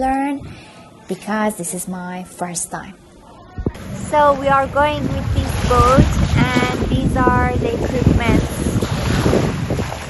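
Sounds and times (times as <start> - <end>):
wind buffeting microphone: 3.6 - 10.0.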